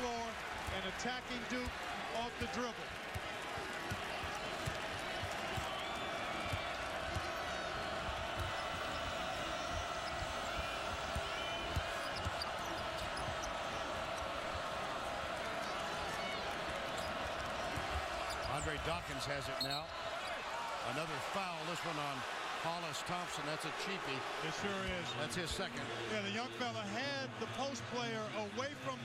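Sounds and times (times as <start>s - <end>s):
arena crowd murmur: 0.0s - 29.0s.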